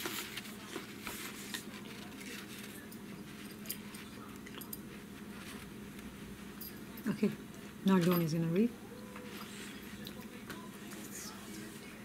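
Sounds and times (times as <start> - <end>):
paper rustling: 0.0 - 4.3.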